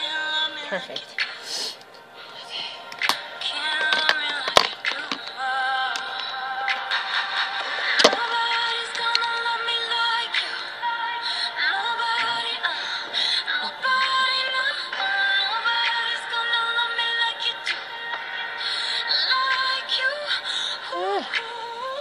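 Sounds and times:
pop music with singing: 0:00.0 - 0:22.0.

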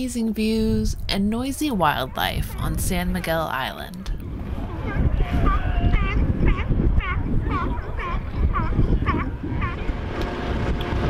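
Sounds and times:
steady low rumble: 0:04.0 - 0:11.0
seal calling: 0:04.5 - 0:09.9.

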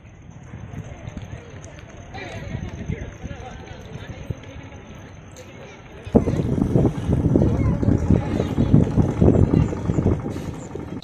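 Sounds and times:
engine low rumble: 0:06.1 - 0:11.0.

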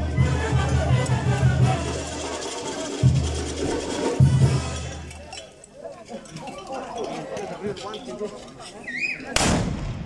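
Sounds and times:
musket blast: 0:09.4 - 0:10.0.

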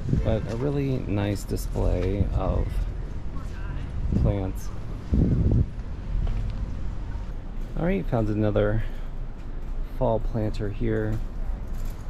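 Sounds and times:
wind buffeting microphone: 0:00.0 - 0:07.6.

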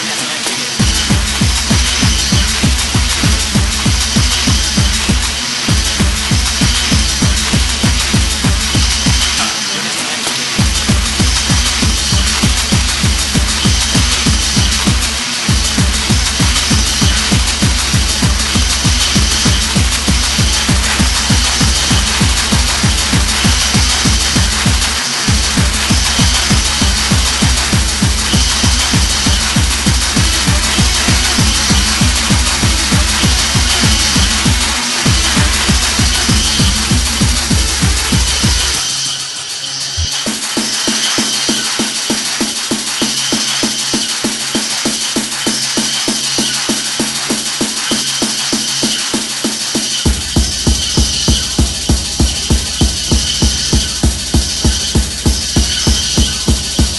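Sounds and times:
fast kick drum beat: 0:00.0 - 0:39.3, 0:40.0 - 0:56.9
high synth layer: 0:00.0 - 0:56.9.

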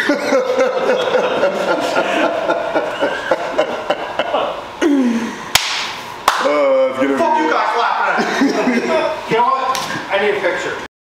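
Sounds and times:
men laughing and chattering: 0:00.0 - 0:05.3, 0:07.0 - 0:10.1
sharp hand clap: 0:05.5 - 0:06.5.

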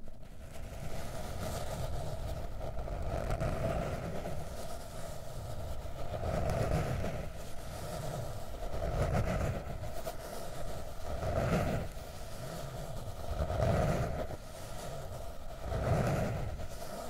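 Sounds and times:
fingernails scratching notebook: 0:02.8 - 0:17.0.

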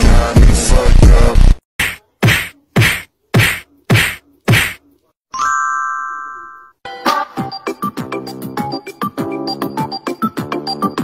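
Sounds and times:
sharp whacks: 0:01.8 - 0:04.8
music: 0:06.8 - 0:11.0.

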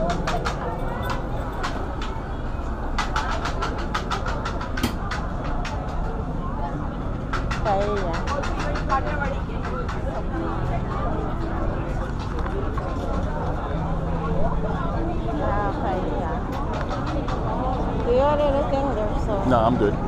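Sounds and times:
crowd chatter: 0:00.0 - 0:20.0
sharp clicks and clatter: 0:07.3 - 0:10.2.

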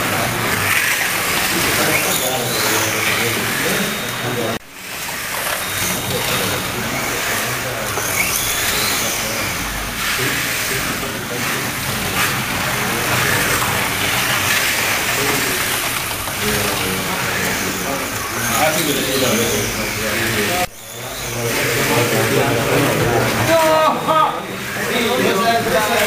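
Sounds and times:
people talking: 0:00.0 - 0:04.6, 0:05.4 - 0:26.0
slot car motors whirring: 0:00.0 - 0:26.0.

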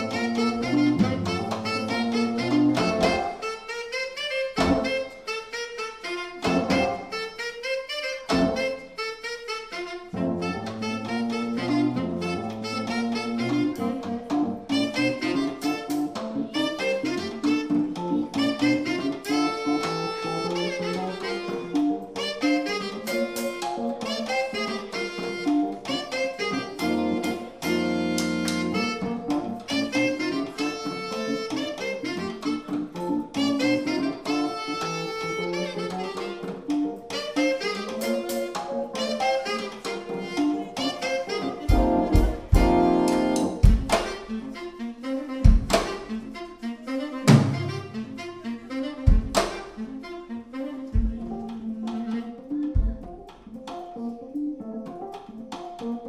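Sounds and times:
keyboards: 0:00.0 - 0:56.0
saxophone: 0:00.0 - 0:56.0
electric guitar: 0:10.1 - 0:44.7
bass line: 0:41.7 - 0:44.1
drum hits: 0:41.7 - 0:44.2, 0:45.5 - 0:46.1, 0:49.1 - 0:49.6, 0:51.0 - 0:51.4.

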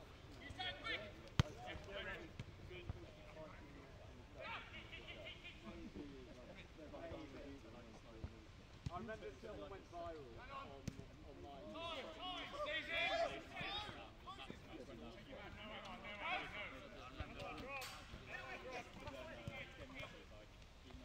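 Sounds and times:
players shouting: 0:11.7 - 0:14.6.

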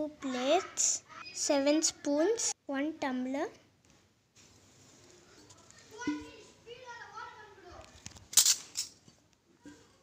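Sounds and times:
faint children talking: 0:05.1 - 0:08.1, 0:09.4 - 0:10.0.

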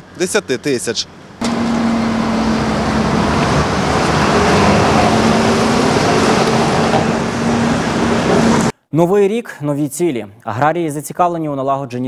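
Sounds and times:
bus engine hum: 0:00.0 - 0:08.7
traffic noise: 0:00.0 - 0:08.7.

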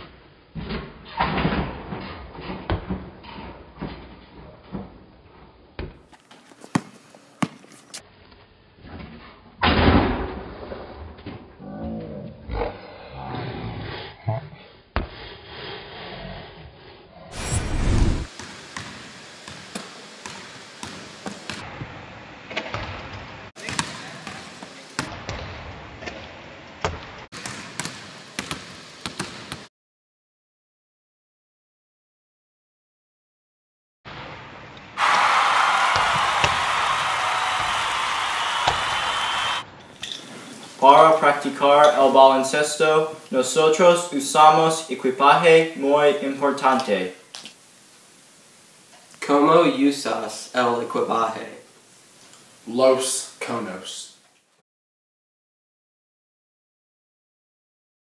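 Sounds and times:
gymnasium room hiss: 0:06.0 - 0:08.0, 0:17.8 - 0:22.6, 0:23.2 - 0:25.1, 0:27.4 - 0:29.7, 0:34.1 - 0:54.6
basketball knocks: 0:38.6 - 0:38.9.

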